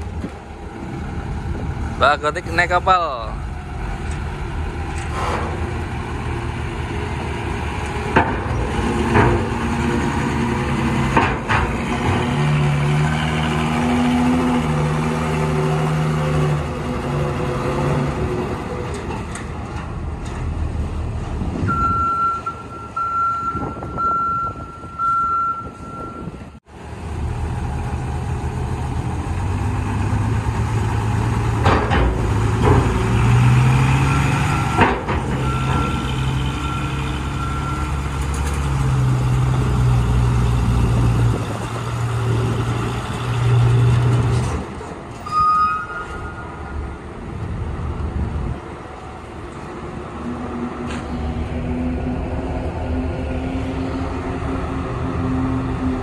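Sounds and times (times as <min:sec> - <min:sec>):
diesel truck engines running: 0:00.0 - 0:45.3, 0:45.9 - 0:56.0
reversing alarm beeping: 0:21.7 - 0:26.5, 0:35.4 - 0:38.0, 0:45.2 - 0:46.9.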